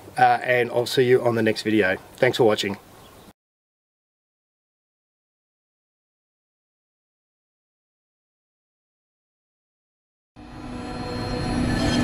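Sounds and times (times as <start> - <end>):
low rumbling drone music: 10.4 - 12.0.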